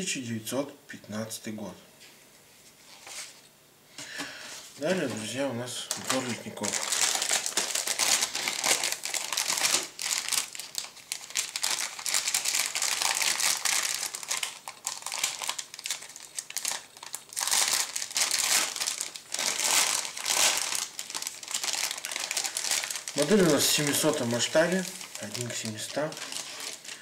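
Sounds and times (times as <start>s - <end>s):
plastic bag crinkling: 4.8s - 27.0s.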